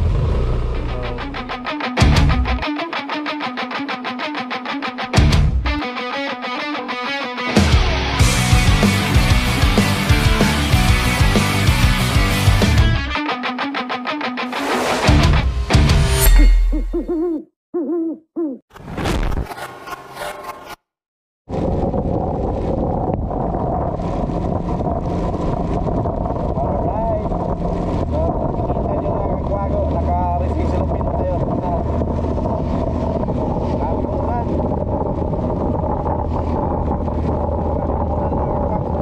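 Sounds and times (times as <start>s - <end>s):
motorcycle engine hum: 0.0s - 1.6s, 21.5s - 39.0s
whoosh: 14.5s - 17.1s
owl hoots: 17.0s - 18.6s
wind noise on microphone: 21.5s - 39.0s.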